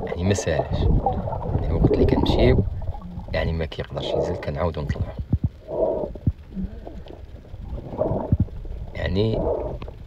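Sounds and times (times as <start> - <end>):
muffled underwater water noise: 0.0 - 10.0.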